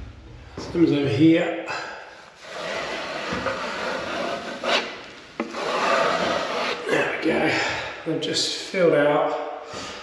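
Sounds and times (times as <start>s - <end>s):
trowel scraping plaster: 2.4s - 7.0s.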